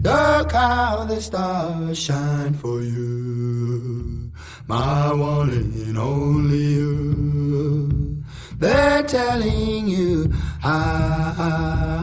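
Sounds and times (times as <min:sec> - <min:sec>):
man singing long notes: 0:00.0 - 0:12.0.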